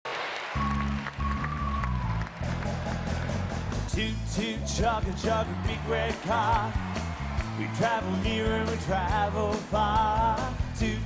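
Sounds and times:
bass line: 0:00.6 - 0:11.0
steady drum beat: 0:02.5 - 0:11.0.

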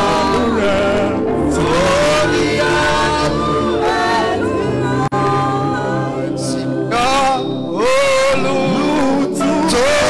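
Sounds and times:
voices singing gospel song: 0:00.0 - 0:10.0.

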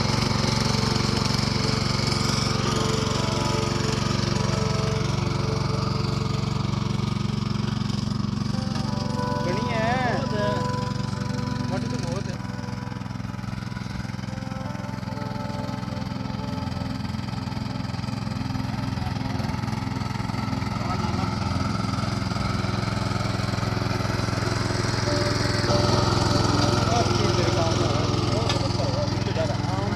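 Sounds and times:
tines churning soil: 0:00.0 - 0:14.3, 0:16.8 - 0:29.9
small tiller engine running: 0:00.0 - 0:29.9.

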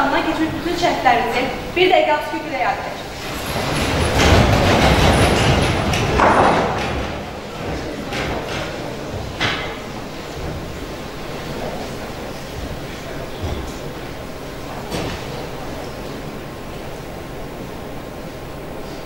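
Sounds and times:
audience rustling and shuffling: 0:00.0 - 0:19.0.

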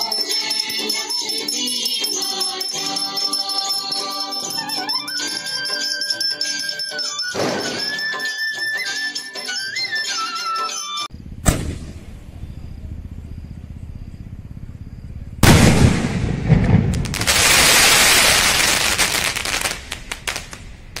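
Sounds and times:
firework bangs: 0:11.4 - 0:12.2, 0:15.4 - 0:21.0
fireworks crackling: 0:15.4 - 0:21.0
fireworks hissing spray: 0:17.1 - 0:20.4.

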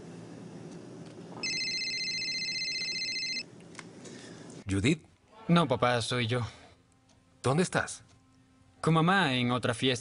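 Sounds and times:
phone ringtone trilling: 0:01.4 - 0:03.5.

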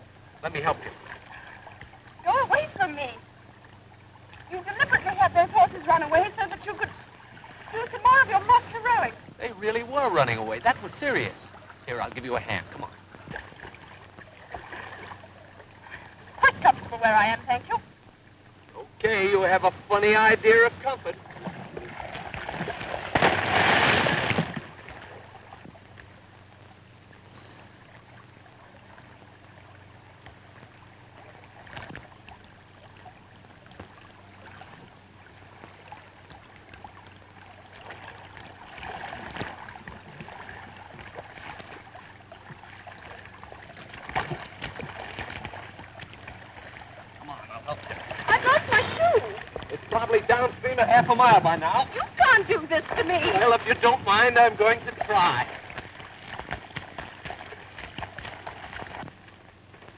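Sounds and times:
faint water background: 0:00.0 - 0:59.9
voices: 0:02.2 - 0:03.3, 0:04.4 - 0:13.1, 0:15.8 - 0:18.0, 0:18.7 - 0:22.0, 0:47.2 - 0:55.6
splash into river water: 0:21.4 - 0:25.3.

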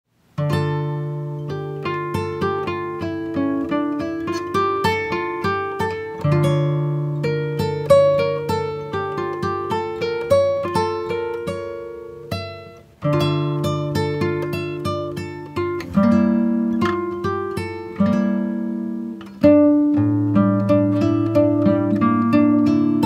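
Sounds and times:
acoustic guitar picking: 0:00.3 - 0:23.0.

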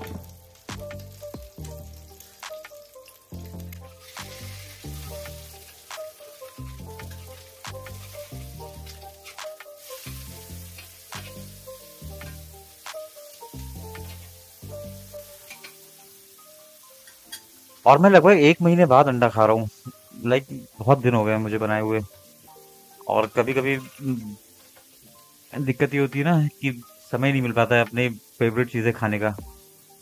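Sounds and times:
background music with steady beat: 0:00.0 - 0:30.0
egg sizzling in ghee: 0:00.0 - 0:30.0
metal spatula turning egg: 0:02.1 - 0:11.4.

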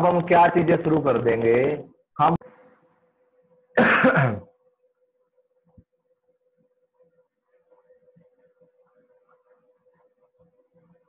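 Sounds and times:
person clearing throat: 0:03.8 - 0:04.5.

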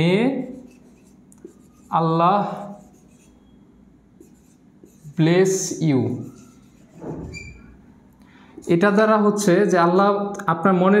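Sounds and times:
marker writing on whiteboard: 0:00.0 - 0:07.8, 0:08.6 - 0:09.7
man speaking: 0:05.1 - 0:06.4, 0:08.6 - 0:11.0.

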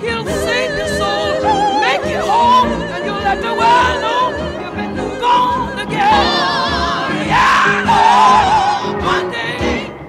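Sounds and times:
lead voice singing with vibrato: 0:00.0 - 0:10.0
women singing sustained harmony: 0:00.0 - 0:10.0.

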